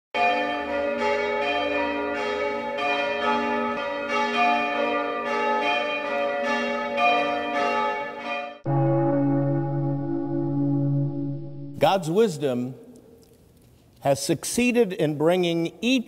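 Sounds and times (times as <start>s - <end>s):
church bells ringing: 0.2s - 12.2s.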